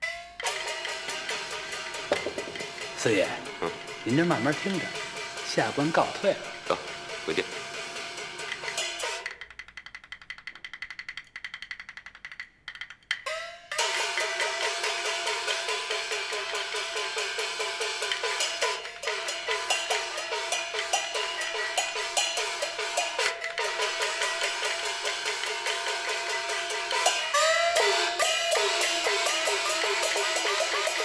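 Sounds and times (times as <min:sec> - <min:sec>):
drum and clapper strokes: 0:00.0 - 0:31.0
cymbal crashes: 0:00.4 - 0:09.3, 0:13.7 - 0:31.0.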